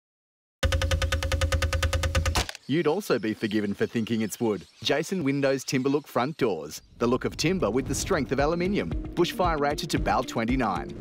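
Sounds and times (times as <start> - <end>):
rapid knocking on metal door: 0.6 - 2.4
steady ringing tone: 0.6 - 2.4.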